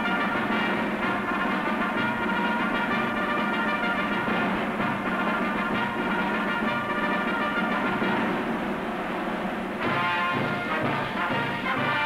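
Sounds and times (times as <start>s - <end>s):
orchestral music with brass chords: 0.0s - 12.0s.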